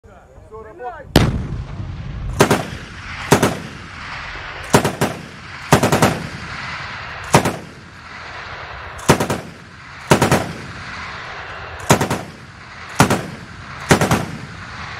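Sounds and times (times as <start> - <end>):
rolling echo: 1.0 - 14.9
automatic gunfire bursts: 2.4 - 3.8, 4.7 - 6.3, 7.3 - 7.7, 9.0 - 10.7, 11.8 - 14.6.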